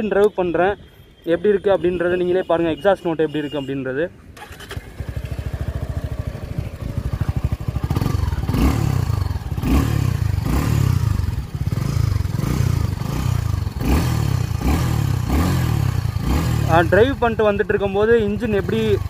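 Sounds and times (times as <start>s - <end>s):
motorcycle engine idling: 4.4s - 19.0s.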